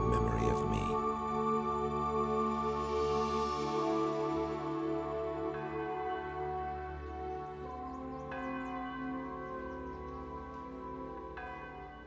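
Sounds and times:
soft theme music chords: 0.0 - 12.0.

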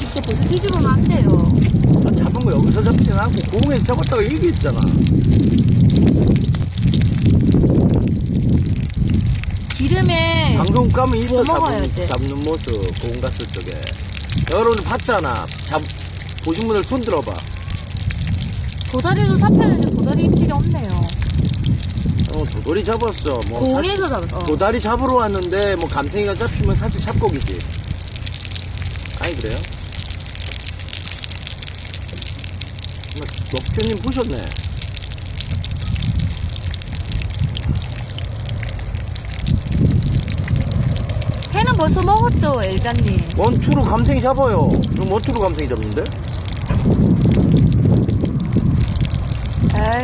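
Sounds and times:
faint fire ticks: 0.0 - 50.0
fish sizzling with fine crackles: 0.0 - 50.0
low steady rumble: 0.0 - 50.0
wind buffeting microphone: 0.0 - 50.0.

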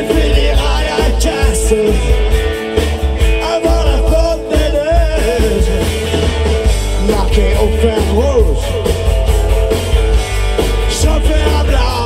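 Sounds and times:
drums: 0.0 - 12.0
electric guitar: 0.0 - 12.0
pulsing bass line: 0.0 - 12.0.

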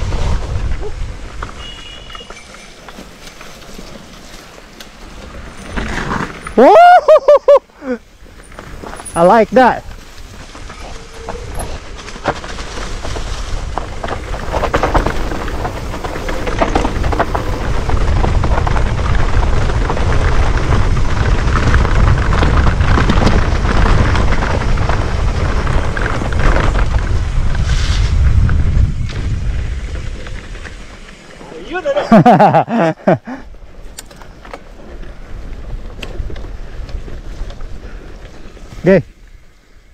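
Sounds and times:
wind rumble on microphone: 0.0 - 2.2, 8.1 - 31.1, 33.4 - 39.9
bike rattling over bumps: 0.0 - 6.9, 8.0 - 39.9
bike tyres on dirt: 0.0 - 39.9.

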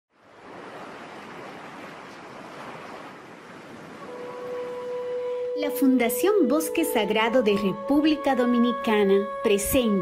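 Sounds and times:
waves rushing: 0.1 - 6.1.

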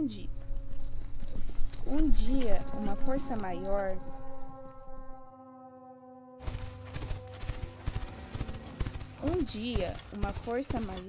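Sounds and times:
low rumble: 0.0 - 9.9
galloping hoofbeats: 0.1 - 3.4, 6.4 - 11.0.

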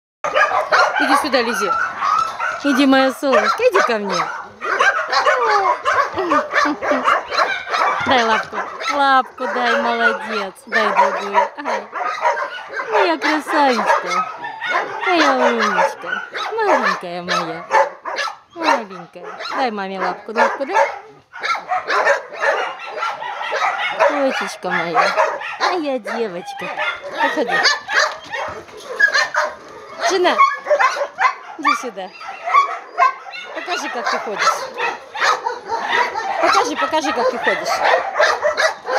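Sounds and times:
dog whining and yelping: 0.3 - 38.9.

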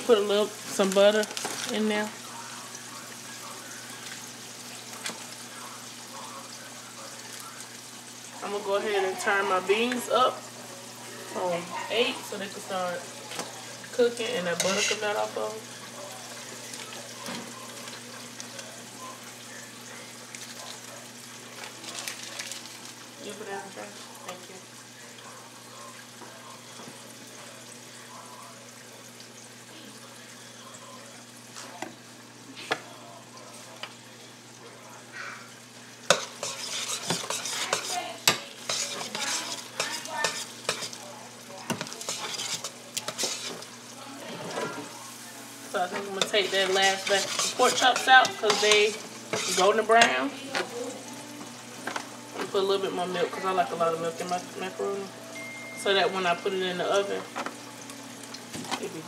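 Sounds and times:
frying sizzle: 0.0 - 59.0
metal spoon scraping a pot: 14.4 - 15.2, 36.1 - 41.0, 41.7 - 43.7, 46.0 - 50.2.

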